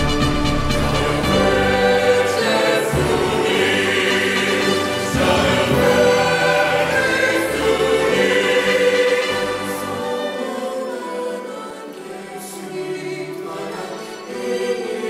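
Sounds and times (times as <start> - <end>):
choir singing long held notes: 0.0 - 15.0
instrumental music: 0.0 - 15.0.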